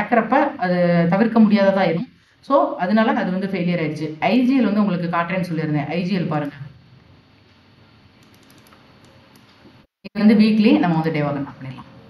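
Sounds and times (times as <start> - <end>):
low room noise: 0.0 - 12.0
computer keys or mouse clicking: 8.2 - 9.6.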